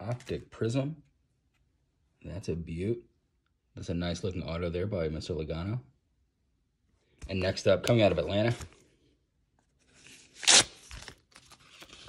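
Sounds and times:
envelope paper tearing: 10.0 - 12.0.

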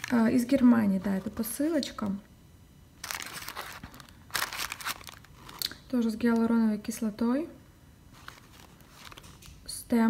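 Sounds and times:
paper packaging rustling: 0.0 - 2.0, 3.0 - 5.7, 8.1 - 9.6.

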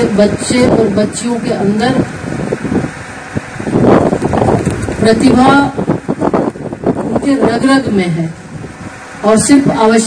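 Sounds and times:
open-air gathering background noise: 0.0 - 10.0.

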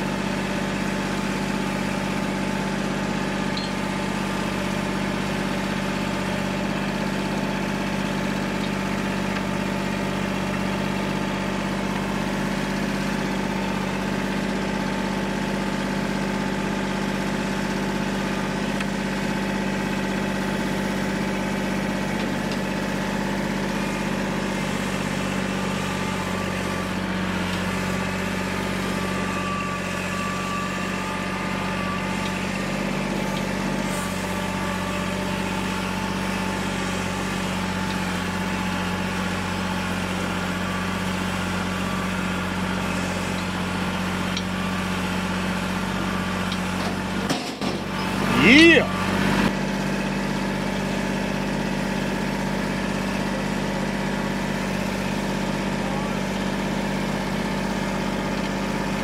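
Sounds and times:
engine running steadily: 0.0 - 59.0.

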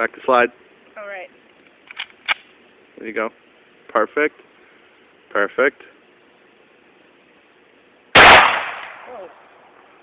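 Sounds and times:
low hiss: 0.0 - 10.0.

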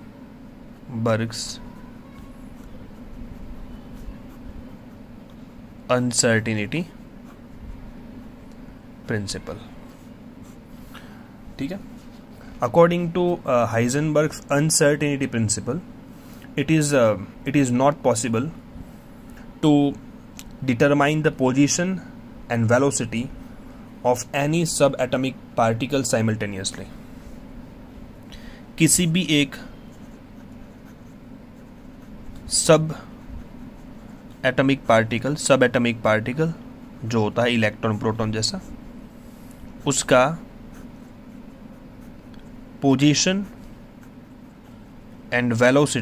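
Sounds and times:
steady low hum: 0.0 - 46.0
ballpoint pen scratching on paper: 29.8 - 35.4, 40.7 - 44.9.

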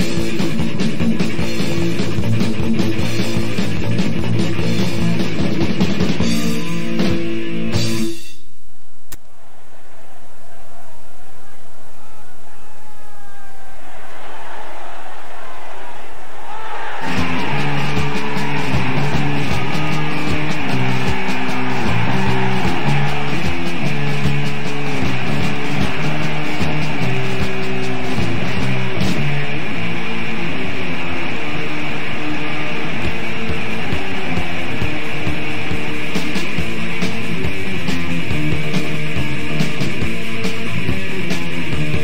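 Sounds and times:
punk band playing: 0.0 - 8.4, 16.7 - 42.0.

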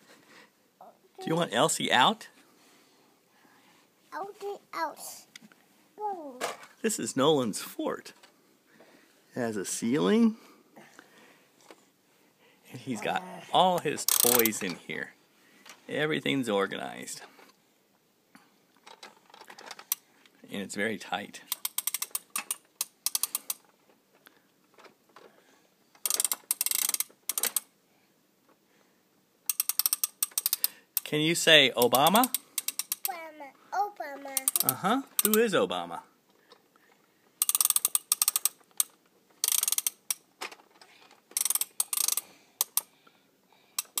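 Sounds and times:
ratchet-like mechanical clicking: 14.0 - 14.6, 21.5 - 23.7, 26.0 - 27.7, 29.5 - 31.1, 31.8 - 33.1, 34.4 - 35.5, 37.4 - 40.3, 41.4 - 42.9, 43.8 - 44.0.

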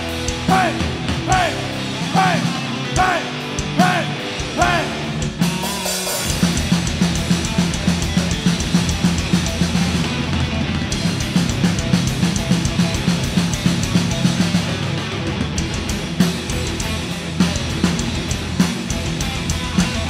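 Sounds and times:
bass guitar: 0.0 - 20.0
distorted electric guitars: 0.0 - 20.0
drum kit: 0.0 - 20.0.

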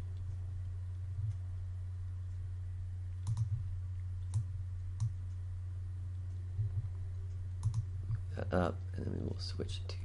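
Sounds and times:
low electrical hum: 0.0 - 10.0
computer mouse clicks: 3.2 - 5.3, 6.3 - 8.2.

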